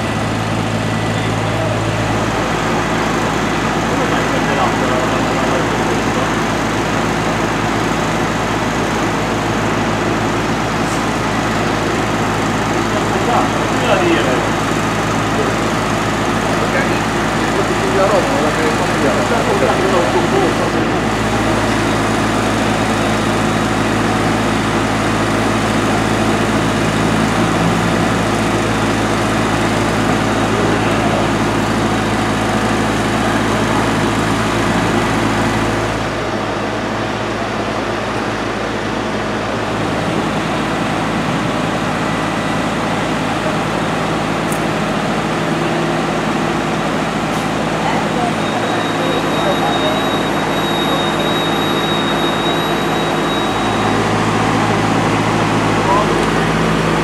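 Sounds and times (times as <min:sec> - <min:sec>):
fire engine engine running: 0:00.0 - 0:57.0
thin high whine: 0:47.8 - 0:57.0.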